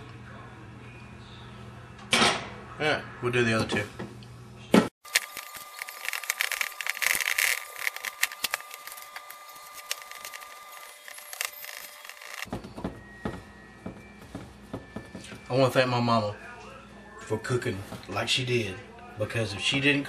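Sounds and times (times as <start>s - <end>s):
fingers tapping on dish: 12.5s - 15.4s.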